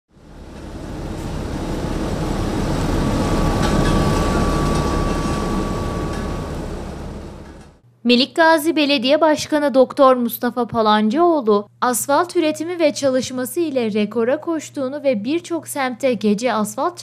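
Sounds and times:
asphalt paver running: 0.1s - 7.8s
faint thin whine: 0.5s - 7.8s.

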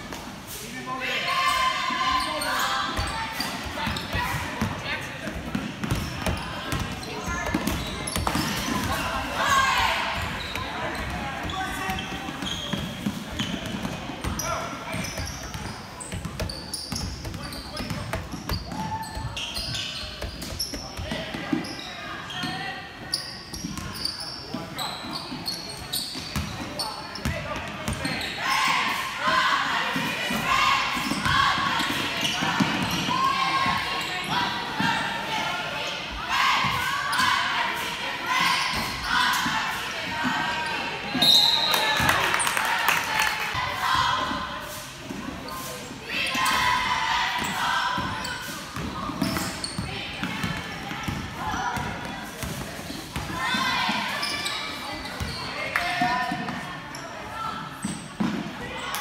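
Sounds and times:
people shouting in a hall: 46.0s - 48.3s.

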